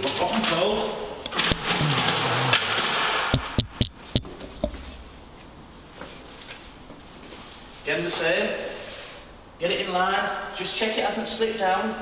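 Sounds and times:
sharp clicks and taps: 1.5s - 4.8s.

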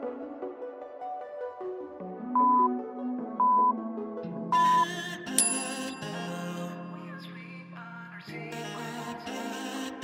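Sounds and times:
background music: 0.0s - 10.0s
timer countdown beeps: 2.4s - 2.8s, 3.4s - 3.8s.

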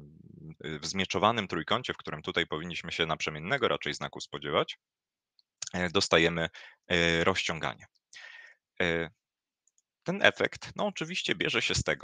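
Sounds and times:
person breathing: 6.5s - 6.9s, 8.2s - 8.6s.

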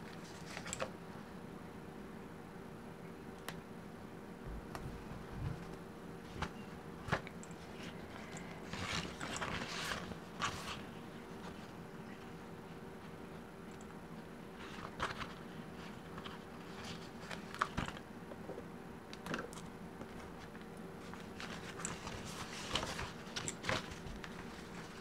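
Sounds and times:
paper rustling: 5.5s - 12.3s, 14.6s - 18.0s, 20.1s - 25.0s.

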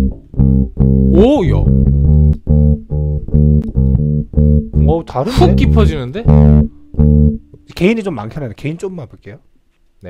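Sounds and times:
electric bass plucked notes: 0.0s - 7.7s.

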